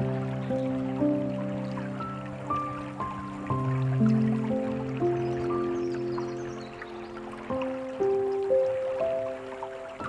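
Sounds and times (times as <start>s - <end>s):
slow gentle piano music: 0.0s - 10.0s
trickling dripping water: 0.0s - 10.0s.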